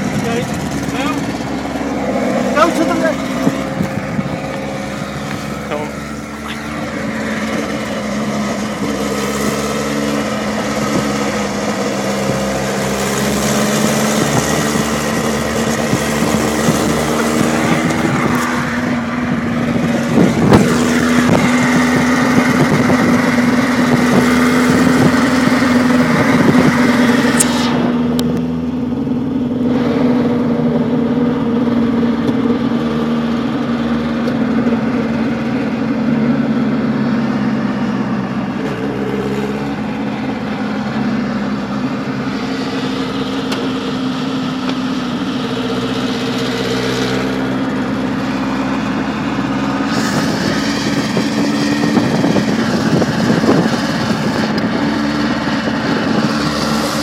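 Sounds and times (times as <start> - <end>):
car engine: 0.0 - 57.0
race car engine running: 0.0 - 57.0
road noise: 0.0 - 57.0.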